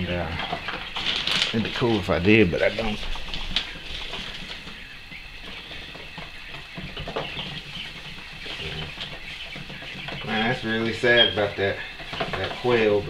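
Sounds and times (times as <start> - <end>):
quail chicks peeping: 0.0 - 13.0.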